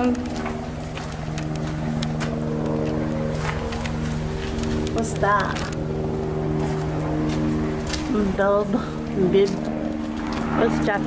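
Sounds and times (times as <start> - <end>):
motor humming steadily: 0.0 - 11.0.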